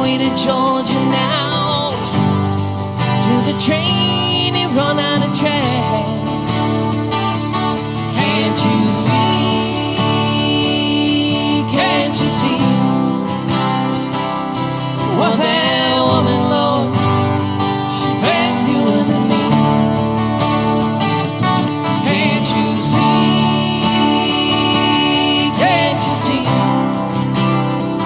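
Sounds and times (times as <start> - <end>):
bending lead guitar notes: 0.0 - 28.0
strummed acoustic guitars: 0.0 - 28.0.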